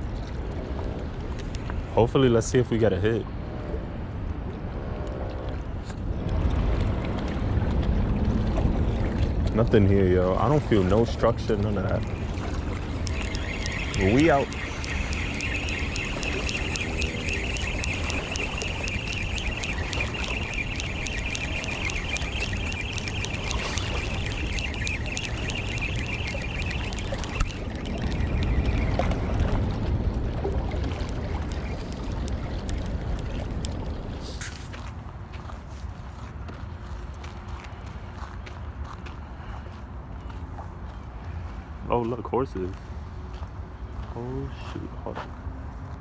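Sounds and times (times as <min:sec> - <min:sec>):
quiet outdoor background: 0:00.0 - 0:46.0
wind rumbling on microphone: 0:00.0 - 0:46.0
fishing reel ticking whir: 0:10.4 - 0:29.1.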